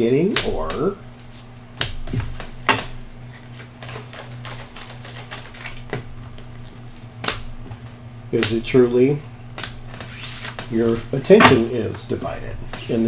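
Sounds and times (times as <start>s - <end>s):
steady low hum: 0.0s - 13.0s
cards clicking and tapping: 3.5s - 8.7s.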